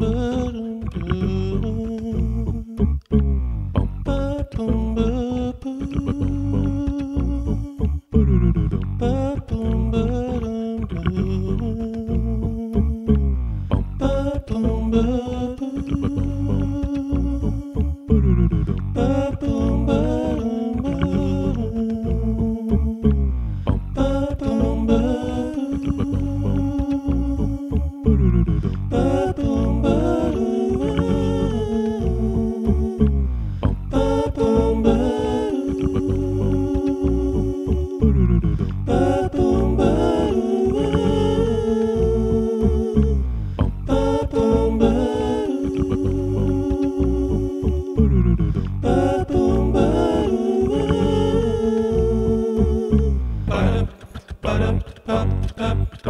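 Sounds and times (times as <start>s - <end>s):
beatboxed percussion: 0.0s - 56.0s
falling vocal sweep: 0.0s - 56.0s
hummed bass: 0.0s - 56.0s
layered voice loops: 0.0s - 56.0s.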